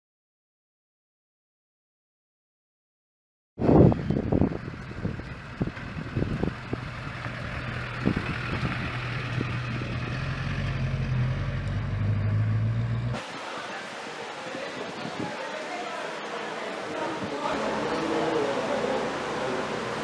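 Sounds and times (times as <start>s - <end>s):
pickup truck engine pulling away: 3.8s - 13.2s.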